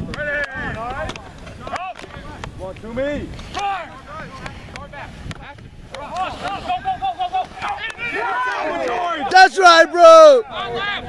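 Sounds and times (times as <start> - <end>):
wind on microphone: 0.0 - 9.3
players shouting: 0.0 - 11.0.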